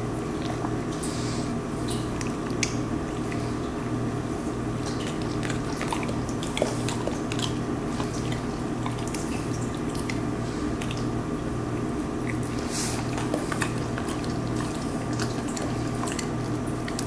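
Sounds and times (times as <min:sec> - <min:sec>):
steady pulsing low hum: 0:00.0 - 0:17.0
dog licking and sniffing: 0:04.8 - 0:11.1, 0:12.2 - 0:17.0.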